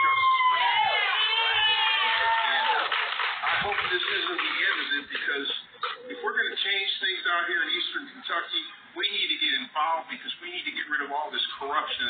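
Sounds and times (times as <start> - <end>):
crowd cheering and whooping: 0.0 - 3.2.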